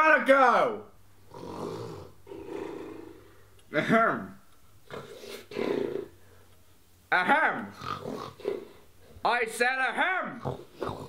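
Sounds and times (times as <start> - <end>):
person snoring: 1.3 - 3.4.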